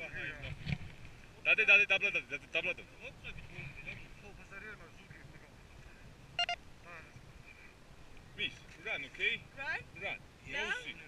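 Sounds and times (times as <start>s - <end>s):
short electronic beeps: 6.4s - 6.6s.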